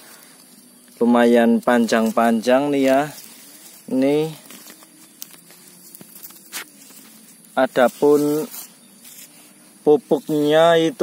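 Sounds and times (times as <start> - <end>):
rustling and crackling of dry plants: 0.0 - 11.0.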